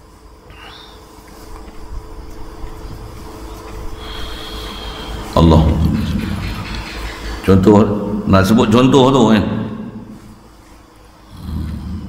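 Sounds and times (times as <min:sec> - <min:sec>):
faint steady hum: 0:00.0 - 0:12.0
man breathing into microphone: 0:03.9 - 0:05.4.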